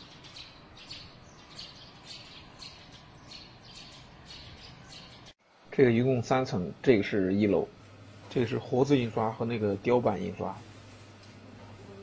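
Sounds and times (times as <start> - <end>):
small birds chirping: 0.0 - 5.4.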